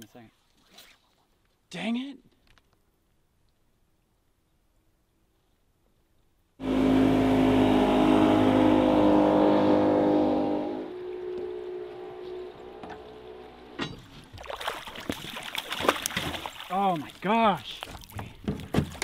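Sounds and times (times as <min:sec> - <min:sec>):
outboard motor running: 0:06.6 - 0:14.4
water splashing on boat: 0:06.6 - 0:19.0.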